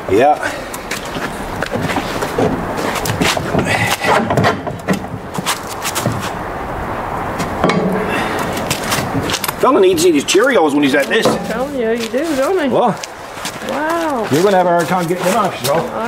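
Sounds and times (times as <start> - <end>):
metal clanking and scraping: 1.8 - 6.4, 7.4 - 10.1, 10.9 - 12.7.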